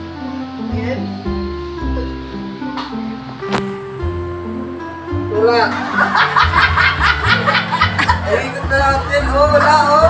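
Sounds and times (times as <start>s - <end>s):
background music: 0.0s - 10.0s
woman laughing hard: 5.7s - 8.7s.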